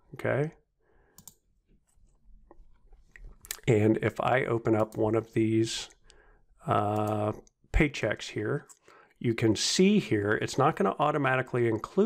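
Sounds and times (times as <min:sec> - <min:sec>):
faint computer mouse clicks: 0:01.2 - 0:01.4.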